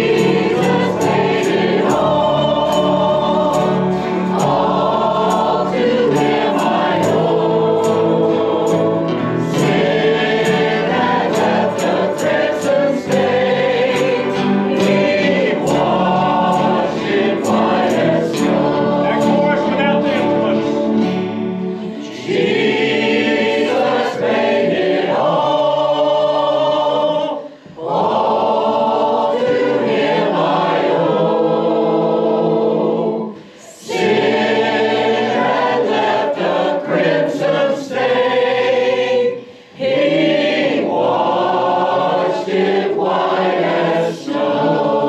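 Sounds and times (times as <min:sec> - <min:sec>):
electric guitar: 0:00.0 - 0:22.3
choir singing: 0:00.0 - 0:45.0.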